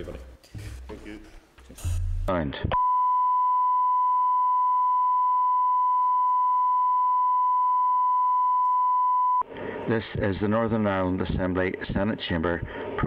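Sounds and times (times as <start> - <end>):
person speaking: 0.0 - 2.7
steady test tone beep: 2.7 - 9.5.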